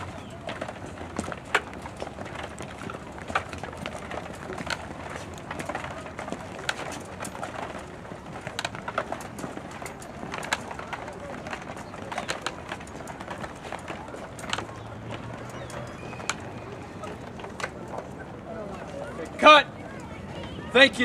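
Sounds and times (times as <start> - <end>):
footsteps on stone steps: 0.0 - 18.1
faint voices: 0.0 - 21.0.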